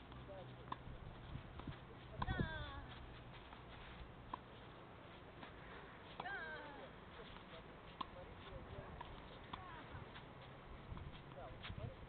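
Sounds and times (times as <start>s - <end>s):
tennis ball hitting racket: 0.0s - 3.6s, 5.4s - 10.3s.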